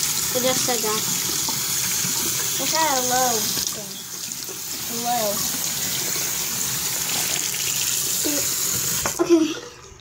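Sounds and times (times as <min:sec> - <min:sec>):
water running from sink tap: 0:00.0 - 0:10.0.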